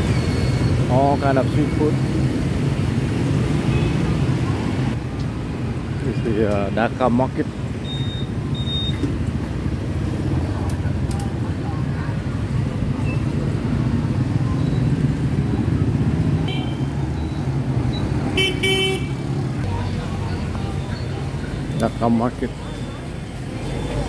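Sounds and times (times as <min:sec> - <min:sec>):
motorbike engines running: 0:00.0 - 0:24.0
vehicle horn: 0:18.4 - 0:19.2.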